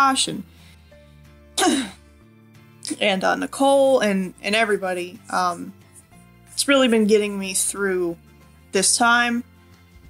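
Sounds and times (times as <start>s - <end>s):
faint background music: 0.0s - 10.0s
woman clearing her throat: 1.6s - 2.0s.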